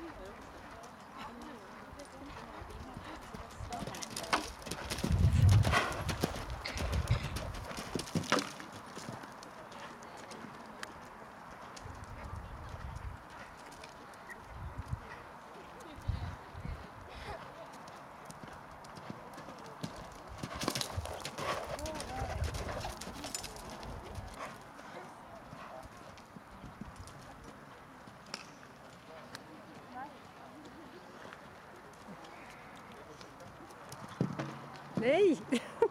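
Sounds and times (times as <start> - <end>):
horse hooves cantering on sand: 0.0 - 35.4.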